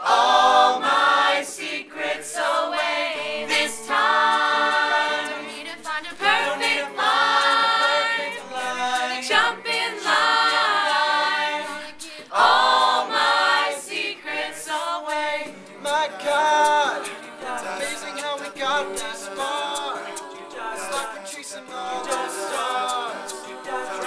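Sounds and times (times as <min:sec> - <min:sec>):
vocal group singing in harmony: 0:00.0 - 0:24.0.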